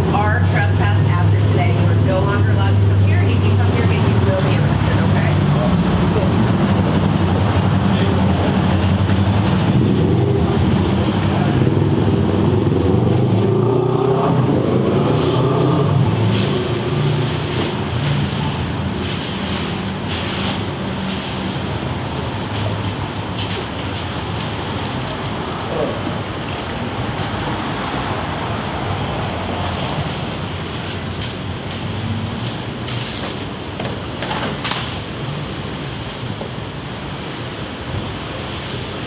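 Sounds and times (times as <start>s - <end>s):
vehicle engine running: 0.0s - 33.8s
street traffic noise: 0.0s - 39.0s.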